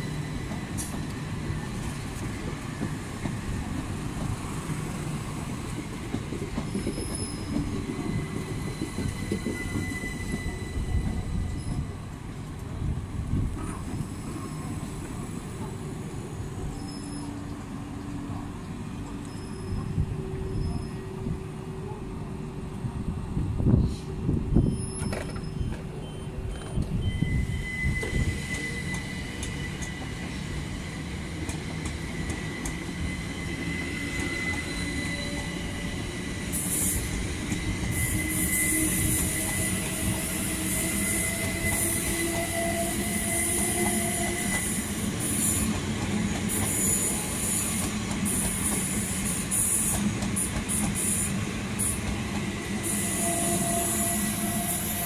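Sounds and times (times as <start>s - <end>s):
wheel squeal: 6.7s - 11.9s, 16.6s - 17.5s, 19.2s - 21.2s, 24.6s - 31.0s, 32.0s - 45.7s.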